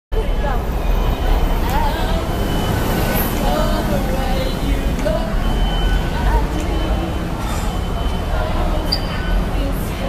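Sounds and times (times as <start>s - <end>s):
indistinct chatter of people: 0.1s - 10.0s
low rumble of traffic: 0.1s - 10.0s.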